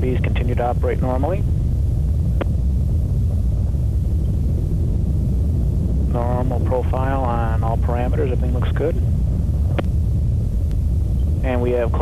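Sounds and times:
rocket engine deep rumble: 0.0 - 12.0.

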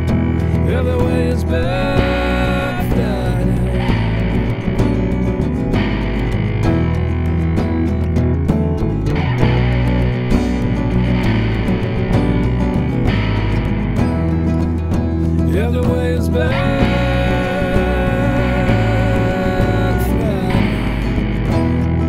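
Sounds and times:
bass guitar: 0.0 - 22.0
distorted electric guitar: 0.0 - 22.0
steady beat: 0.0 - 22.0.

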